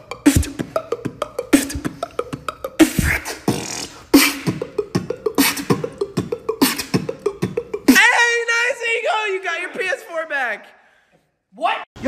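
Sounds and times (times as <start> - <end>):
person beatboxing: 0.0 - 8.2
pitched vocal sliding sound: 0.0 - 8.4.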